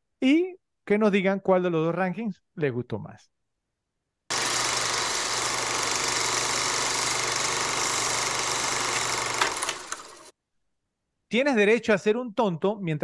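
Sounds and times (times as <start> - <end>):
film projector whirring: 4.3 - 10.3.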